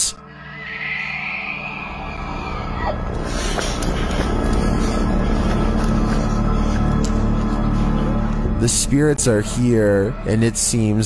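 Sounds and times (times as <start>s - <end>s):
high drawn-out screech: 0.0s - 3.0s
background music drone: 0.0s - 11.0s.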